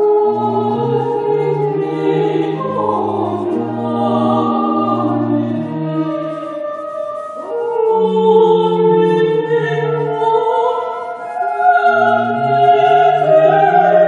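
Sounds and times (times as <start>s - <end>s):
choir singing long held notes: 0.0s - 14.0s.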